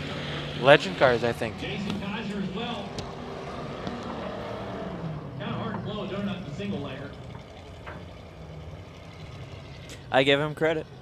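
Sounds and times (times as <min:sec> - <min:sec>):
car engine low hum: 0:00.0 - 0:11.0
racetrack background noise: 0:00.0 - 0:11.0.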